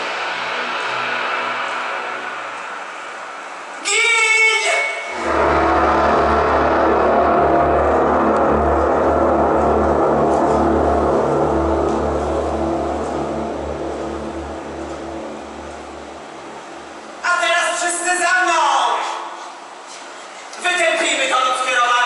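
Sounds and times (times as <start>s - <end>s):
dark rumbling soundtrack: 0.0s - 3.9s, 5.1s - 17.4s.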